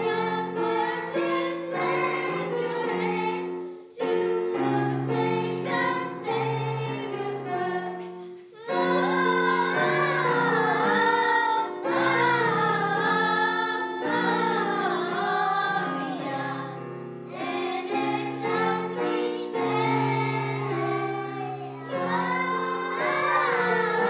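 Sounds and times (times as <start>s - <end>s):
children's choir singing: 0.0s - 24.0s.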